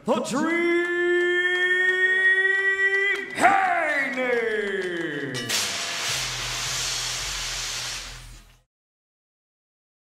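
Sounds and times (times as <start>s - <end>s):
smoke jets hissing: 5.5s - 8.5s.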